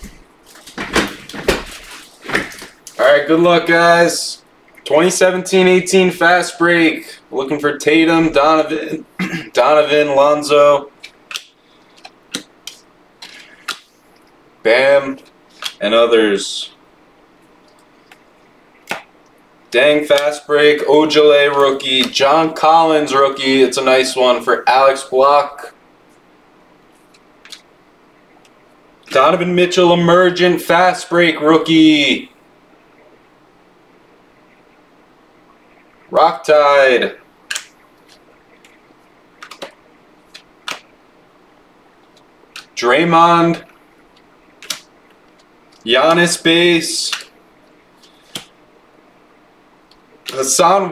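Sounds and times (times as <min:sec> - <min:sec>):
trading cards snapping: 0:11.0 - 0:14.0, 0:15.5 - 0:15.8, 0:18.9 - 0:19.1, 0:27.1 - 0:27.6, 0:37.5 - 0:38.8, 0:39.4 - 0:40.9, 0:42.0 - 0:42.8, 0:44.6 - 0:45.8, 0:47.0 - 0:47.3, 0:48.0 - 0:48.5
trading cards flipped with clicks: 0:37.5 - 0:38.2, 0:39.4 - 0:40.9, 0:44.6 - 0:44.9.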